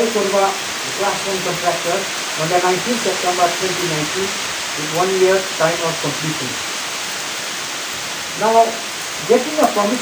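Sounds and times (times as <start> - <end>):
man speaking into a microphone: 0.0 - 6.6, 8.3 - 10.0
steady hiss: 0.0 - 10.0.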